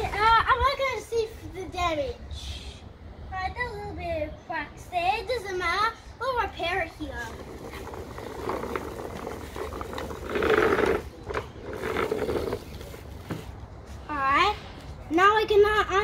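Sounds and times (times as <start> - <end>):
plastic wheels rolling on concrete: 6.2 - 13.6.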